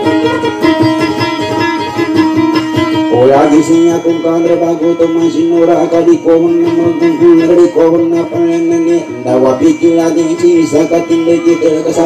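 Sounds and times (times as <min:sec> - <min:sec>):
acoustic guitar plucking: 0:00.0 - 0:12.0.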